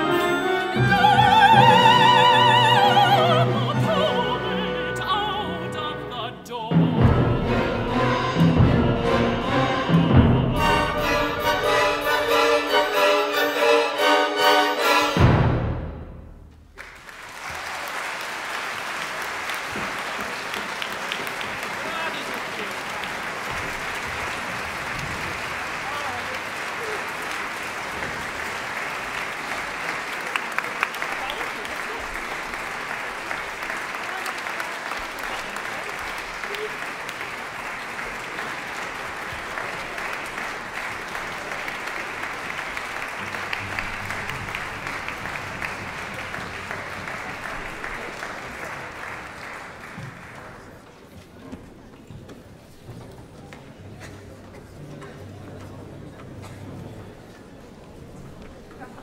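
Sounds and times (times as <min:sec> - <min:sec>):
audience applause: 0:16.7 - 0:51.4.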